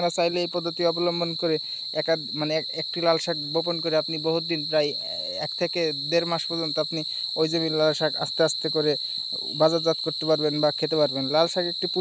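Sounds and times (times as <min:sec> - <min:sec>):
crickets droning: 0:00.0 - 0:12.0
man speaking: 0:00.0 - 0:12.0.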